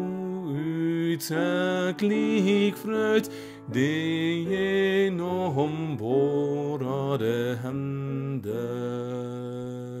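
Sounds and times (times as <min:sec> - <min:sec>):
person singing a hymn: 0:00.0 - 0:10.0.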